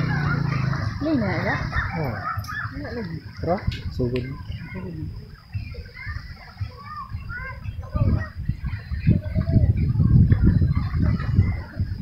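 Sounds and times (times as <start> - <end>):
low rumbling noise: 0.0 - 3.4
distant voices: 0.0 - 12.0.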